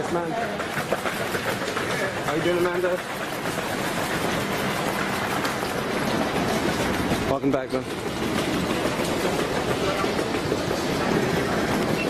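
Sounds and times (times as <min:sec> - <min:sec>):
airport terminal rumble and hiss: 0:00.0 - 0:12.0.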